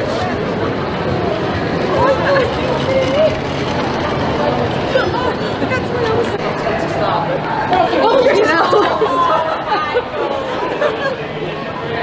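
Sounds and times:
women talking and exclaiming: 0:01.8 - 0:11.6.

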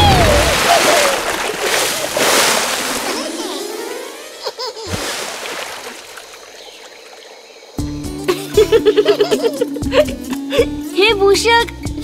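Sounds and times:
water sloshing and trickling: 0:00.0 - 0:04.0, 0:04.8 - 0:07.7
quiet background music: 0:07.8 - 0:12.0.

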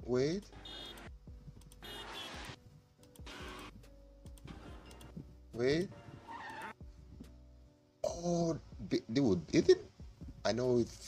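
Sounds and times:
cartoon background music: 0:00.0 - 0:07.4.

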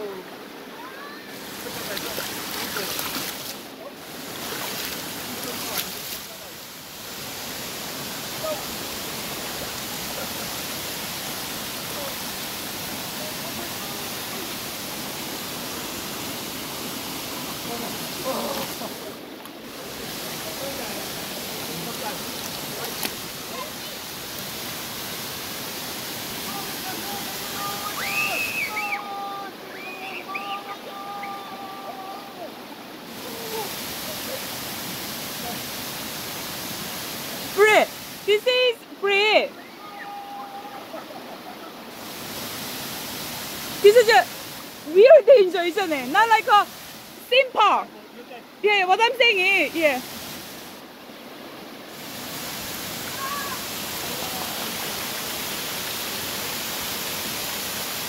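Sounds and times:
stream running over rocks: 0:00.0 - 0:58.0
waterfall rushing: 0:00.0 - 0:58.0.

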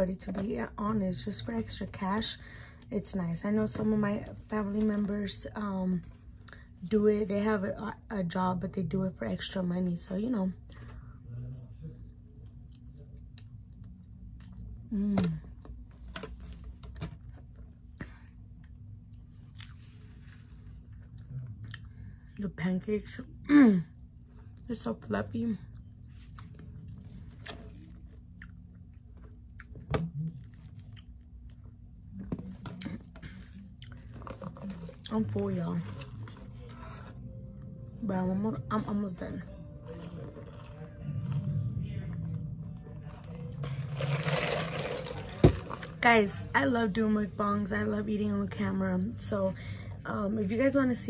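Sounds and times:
low steady hum: 0:00.0 - 0:51.0
person chewing food: 0:26.2 - 0:31.8.

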